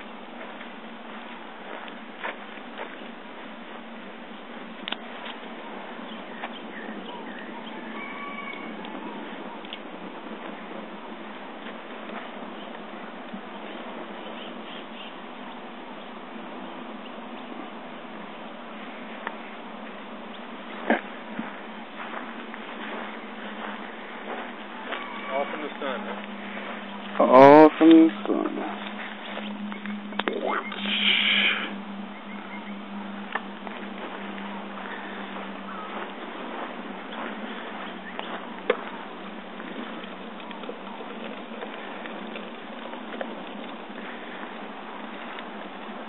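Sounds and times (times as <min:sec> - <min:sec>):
faint fire crackles: 0:00.0 - 0:46.0
cardboard burning with crackles: 0:38.6 - 0:46.0.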